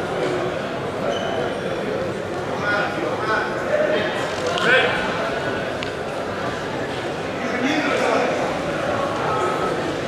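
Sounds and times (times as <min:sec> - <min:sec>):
murmur of voices in a hall: 0:00.0 - 0:10.0.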